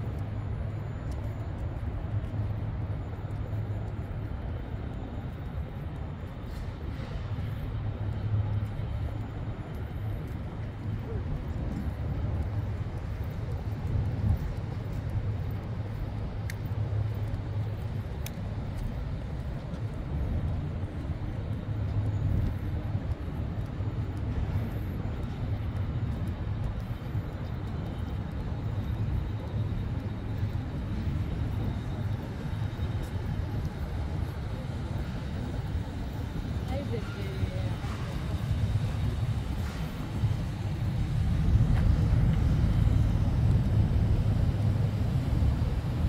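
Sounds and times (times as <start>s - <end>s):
distant city traffic rumble: 0.0s - 46.0s.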